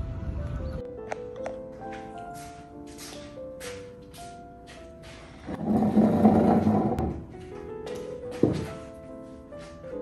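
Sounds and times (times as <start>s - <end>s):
chair scraping across floor: 5.1s - 7.3s.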